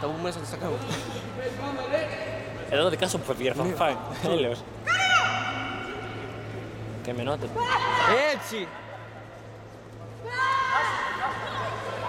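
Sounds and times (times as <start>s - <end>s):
steady low hum: 0.0s - 12.0s
people shouting: 4.9s - 6.3s, 7.6s - 8.6s.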